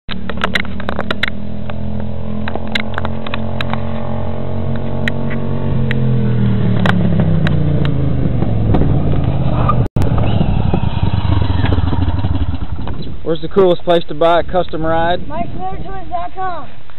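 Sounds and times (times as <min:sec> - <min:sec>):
utility cart engine running: 0:10.0 - 0:13.1.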